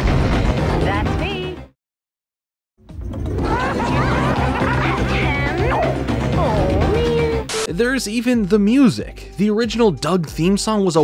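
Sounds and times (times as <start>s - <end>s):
playful cartoon music: 2.8s - 11.0s.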